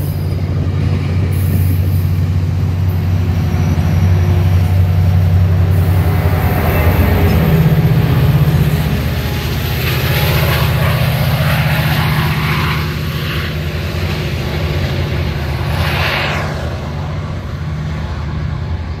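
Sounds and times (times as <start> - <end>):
diesel locomotive engine drone: 0.0 - 19.0.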